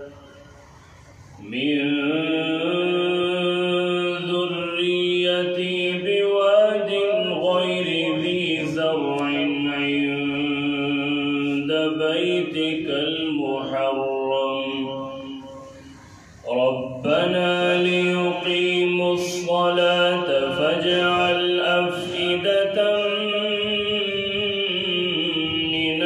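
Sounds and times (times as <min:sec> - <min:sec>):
man chanting: 0:01.4 - 0:15.8, 0:16.4 - 0:26.0.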